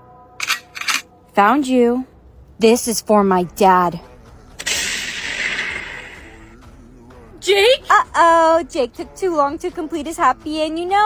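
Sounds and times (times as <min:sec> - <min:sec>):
blast sound effect: 0:04.6 - 0:06.4.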